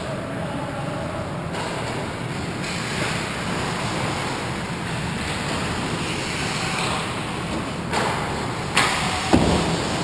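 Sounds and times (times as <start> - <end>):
ice rink noise: 0.0 - 10.0.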